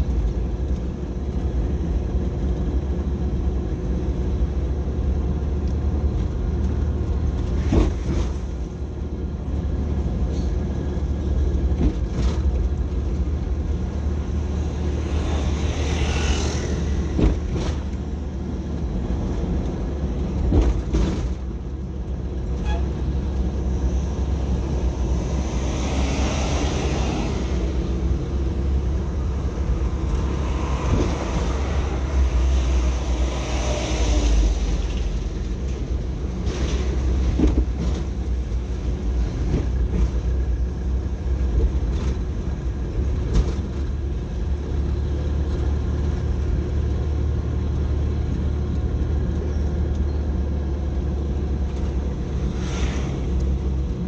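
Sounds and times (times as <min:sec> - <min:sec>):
car engine and tyre rumble: 0:00.0 - 0:54.0
rushing noise: 0:52.2 - 0:54.0.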